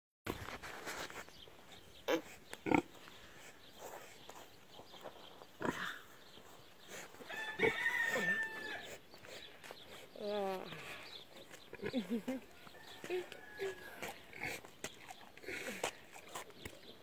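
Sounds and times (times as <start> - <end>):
pigs grunting: 2.1 - 3.0, 13.2 - 16.5.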